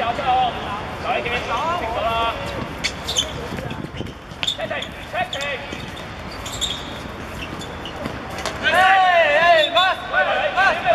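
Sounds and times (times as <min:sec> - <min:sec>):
players shouting: 0:08.6 - 0:10.9.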